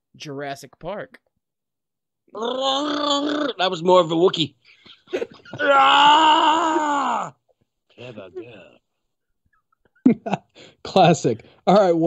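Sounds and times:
man imitating dinosaur roar: 0:02.3 - 0:03.7.

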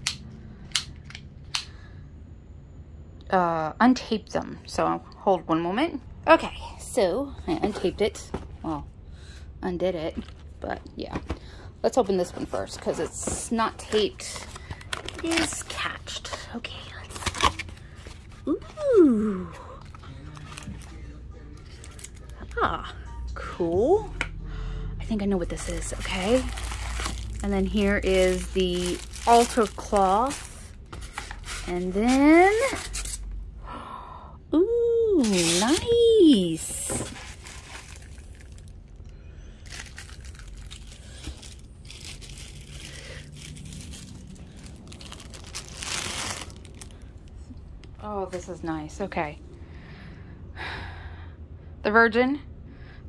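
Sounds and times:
plastic packaging crinkling: 0:25.6 - 0:33.3, 0:35.2 - 0:47.4.

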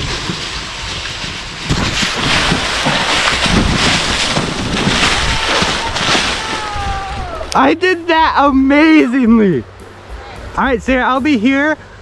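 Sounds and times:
rustling: 0:00.0 - 0:07.6
scraping steps down sand slope: 0:00.0 - 0:07.8
wind buffeting microphone: 0:00.0 - 0:08.8.

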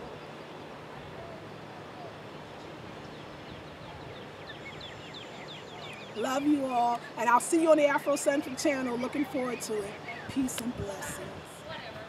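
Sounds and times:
distant traffic: 0:00.0 - 0:12.0
small bird singing: 0:01.3 - 0:07.0.

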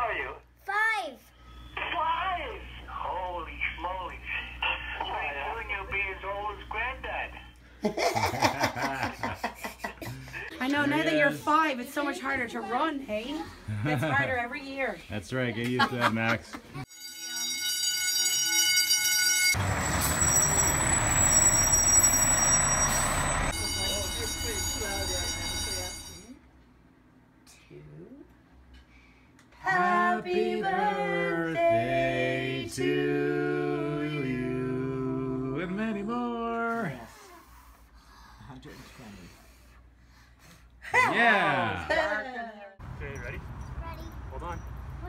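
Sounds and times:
person laughing: 0:07.8 - 0:10.6
fire alarm steady electronic tone: 0:16.9 - 0:26.4
fire truck engine running: 0:19.5 - 0:26.2.

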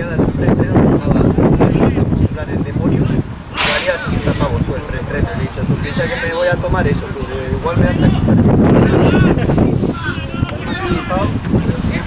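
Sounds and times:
spectators talking: 0:00.0 - 0:12.0
wind on microphone: 0:00.0 - 0:12.0
brief hiss: 0:03.6 - 0:04.5.

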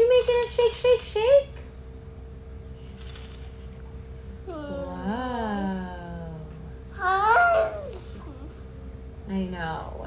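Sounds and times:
toy rattle shaking: 0:00.0 - 0:01.3, 0:02.8 - 0:03.7.

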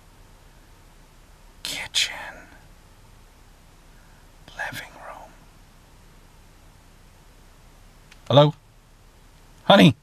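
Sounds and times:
man whispering: 0:01.6 - 0:02.7, 0:04.4 - 0:05.5.

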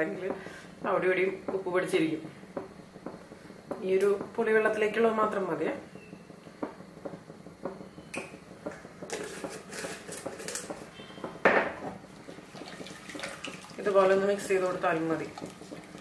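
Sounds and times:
pots and utensils clinking: 0:08.2 - 0:13.8
pots clattering loudly: 0:08.6 - 0:13.8.

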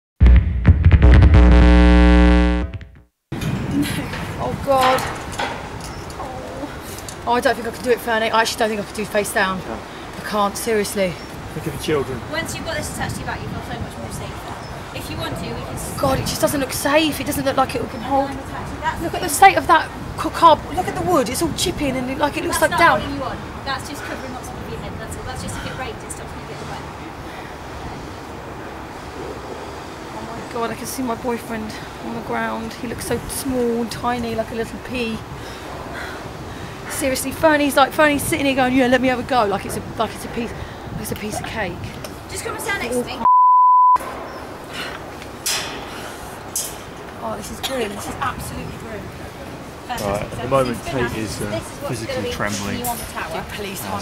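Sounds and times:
outdoor background noise: 0:03.3 - 0:43.3, 0:43.9 - 0:54.0
wind noise on microphone: 0:03.4 - 0:06.9, 0:11.9 - 0:23.7, 0:33.0 - 0:43.0, 0:48.0 - 0:50.6.

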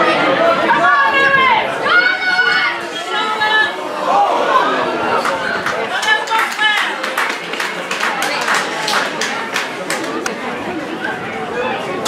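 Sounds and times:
voices chattering and calling: 0:00.0 - 0:12.0
sharp clap-like sounds: 0:05.3 - 0:10.4.

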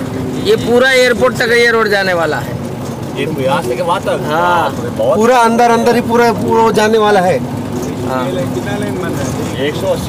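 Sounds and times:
vehicle engine running: 0:00.0 - 0:10.0
voices: 0:00.0 - 0:10.0.

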